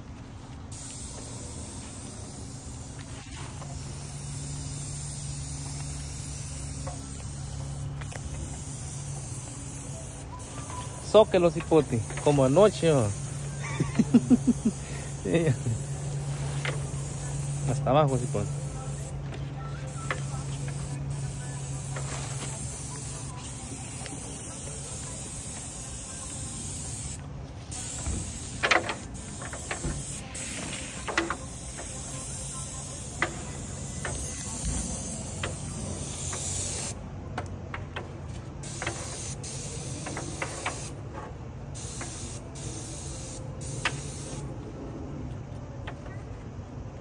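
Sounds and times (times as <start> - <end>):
steady low hum: 0.0 - 38.6
paint roller hissing on wall: 0.6 - 37.0, 38.4 - 41.0, 41.8 - 44.5.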